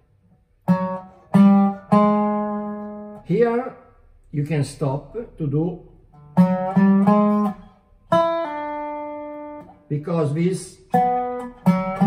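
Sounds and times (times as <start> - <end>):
resonator guitar slide notes: 0.6 - 3.2, 6.1 - 9.9, 10.9 - 12.0.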